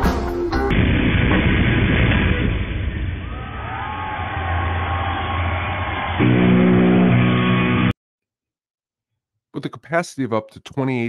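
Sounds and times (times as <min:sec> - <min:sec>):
muffled live rock music: 0:00.0 - 0:00.8
electric guitar bending notes: 0:06.2 - 0:07.9.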